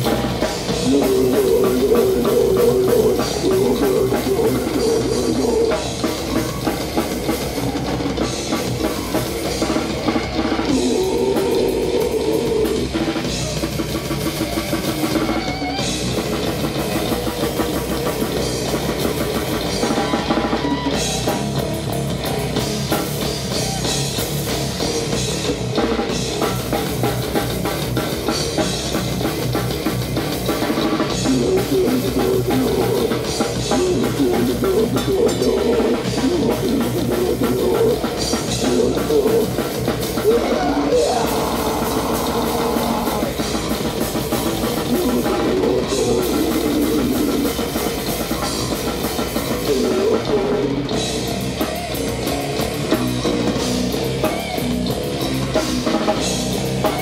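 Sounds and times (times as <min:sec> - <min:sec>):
drum kit: 0:00.0 - 0:57.0
electric guitar riffs: 0:00.0 - 0:57.0.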